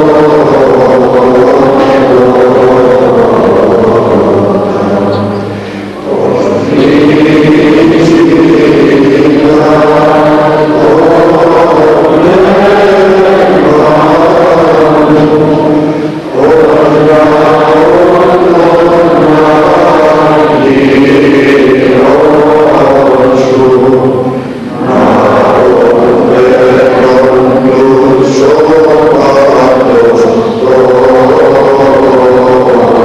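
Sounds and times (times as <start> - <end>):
voices singing a chant: 0.0 - 33.0.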